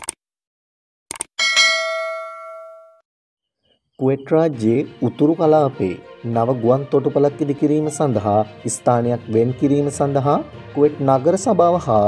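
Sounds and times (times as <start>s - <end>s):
bell-like ding: 1.4s - 3.0s.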